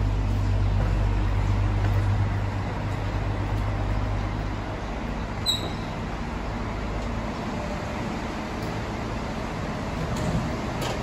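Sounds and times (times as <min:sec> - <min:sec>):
traffic noise: 0:00.0 - 0:11.0
vehicle engine rumble: 0:00.0 - 0:11.0.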